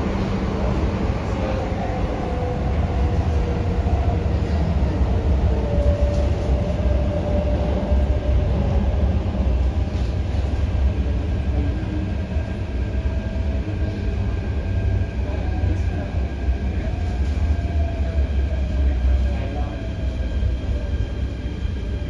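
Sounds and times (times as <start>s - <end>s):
train rumbling on track: 0.0s - 22.0s.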